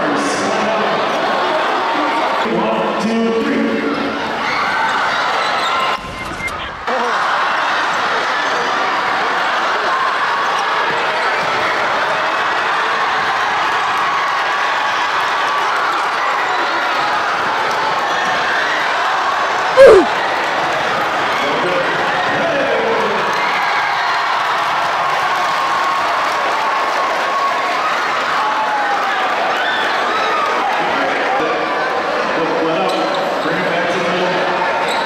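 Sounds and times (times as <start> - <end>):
crowd cheering and shouting: 3.6 - 20.2.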